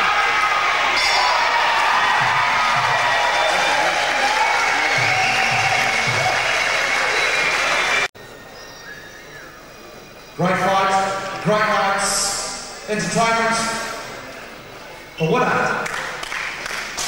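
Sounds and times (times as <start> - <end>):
applause: 0.0 - 8.1, 15.8 - 17.0
crowd voices: 0.0 - 15.6
music: 2.2 - 8.0.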